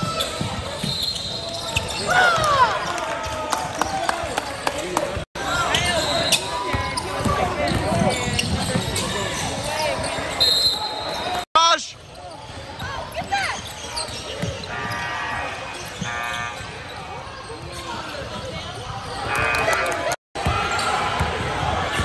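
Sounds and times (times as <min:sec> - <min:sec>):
sneakers squeaking on hardwood: 0:00.0 - 0:02.2, 0:05.6 - 0:11.4, 0:12.4 - 0:19.5.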